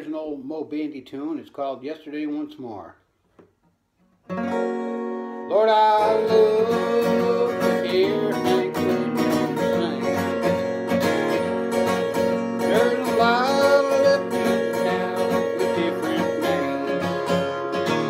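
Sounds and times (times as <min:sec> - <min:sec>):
acoustic guitar strumming: 0:04.0 - 0:18.0
sliding melody line: 0:04.5 - 0:18.0.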